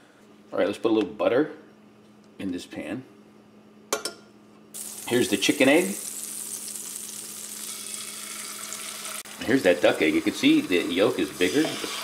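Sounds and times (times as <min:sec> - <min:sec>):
butter sizzling in frying pan: 0:04.8 - 0:12.0.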